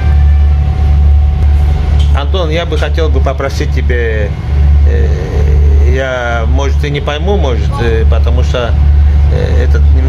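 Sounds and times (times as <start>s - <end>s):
faint steady whine: 0.0s - 10.0s
ferry engines droning: 0.0s - 10.0s.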